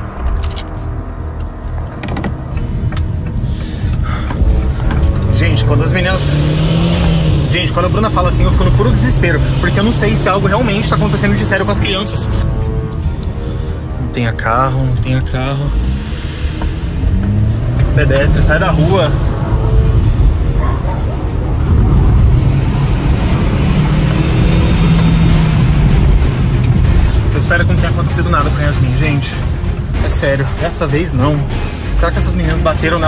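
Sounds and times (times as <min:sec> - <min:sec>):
background music: 0:00.0 - 0:33.0
car engine rumbling: 0:00.0 - 0:33.0.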